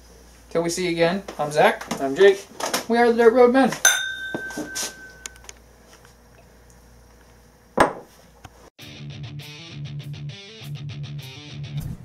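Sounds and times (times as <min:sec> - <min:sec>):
glasses clinking and ringing: 0:03.9 - 0:05.4.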